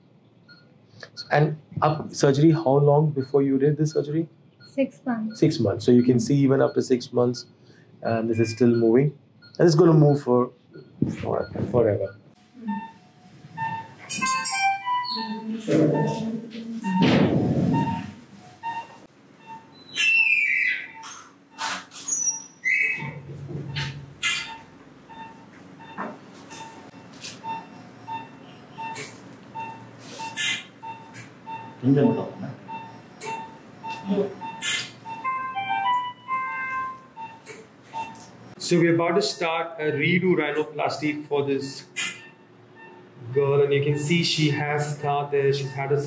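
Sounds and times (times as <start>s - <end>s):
patient monitor beeping: 0.5s - 46.0s.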